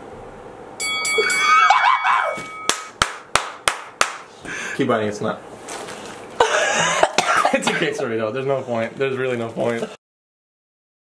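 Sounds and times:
ringing tones: 0.8s - 3.0s
hands clapping: 2.7s - 4.3s.

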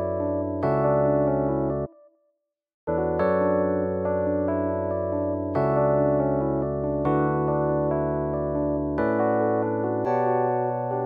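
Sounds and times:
electric piano chords: 0.0s - 2.0s, 2.9s - 11.0s.

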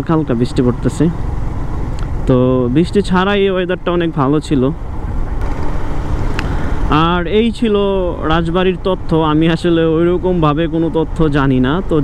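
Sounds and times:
motorcycle road noise: 0.0s - 12.0s.

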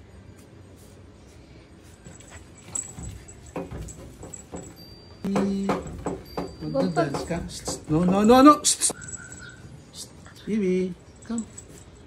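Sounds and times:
dog claws tapping on glass: 2.9s - 9.0s.

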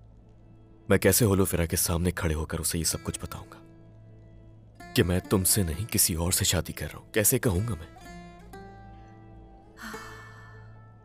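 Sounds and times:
soft background music: 0.0s - 11.0s
woman sighing: 9.7s - 10.9s.

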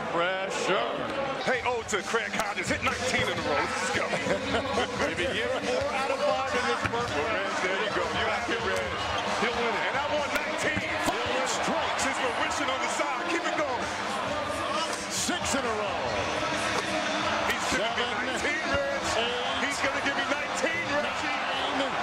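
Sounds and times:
crowd voices din: 0.0s - 22.0s.

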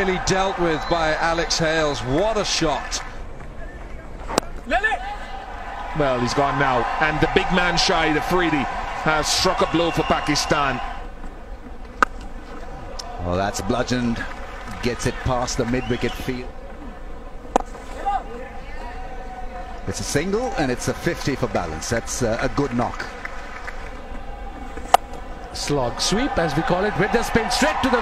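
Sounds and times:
crowd background noise: 0.0s - 28.0s
low steady background noise: 0.0s - 28.0s.

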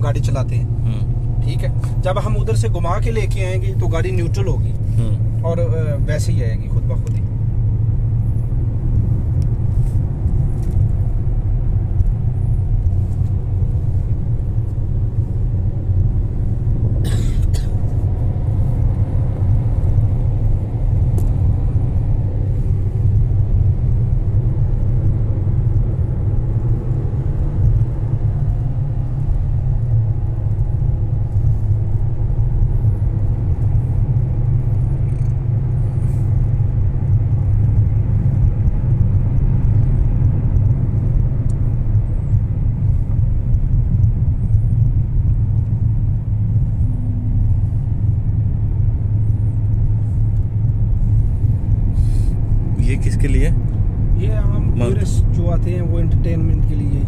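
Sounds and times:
car engine and tyre noise: 0.0s - 57.0s.

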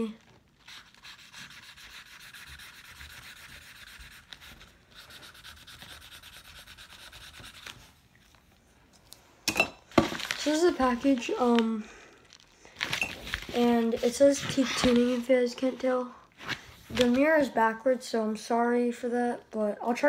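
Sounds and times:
marker scribbling on paper: 0.7s - 7.7s.

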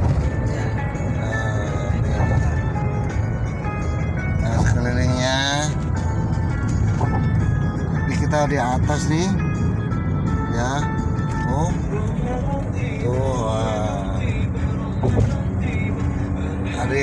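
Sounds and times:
car cabin road rumble: 0.0s - 17.0s
music with singing: 0.0s - 17.0s.

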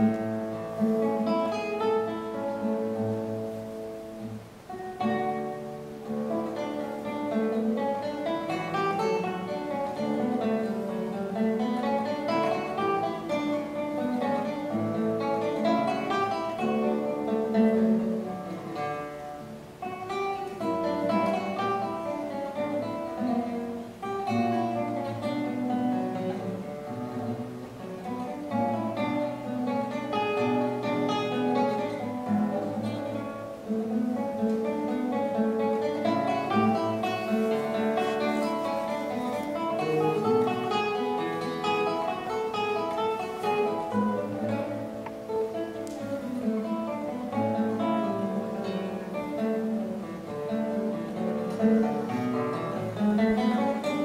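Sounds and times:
fingerstyle classical guitar: 0.0s - 54.0s.

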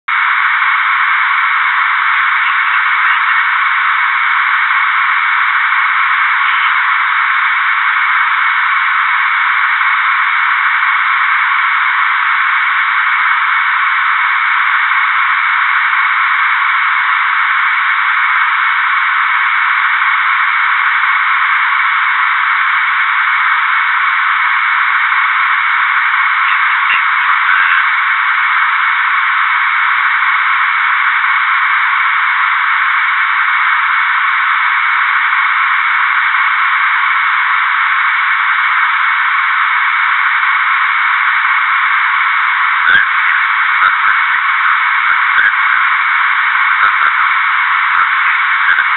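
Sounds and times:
thin telephone-like hiss: 0.1s - 48.9s.

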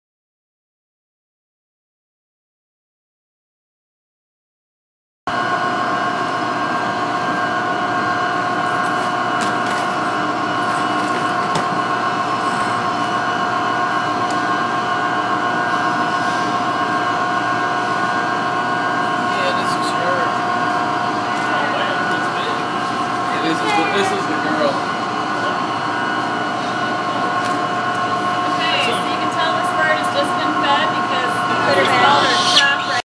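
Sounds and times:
machinery whine: 5.3s - 33.0s.

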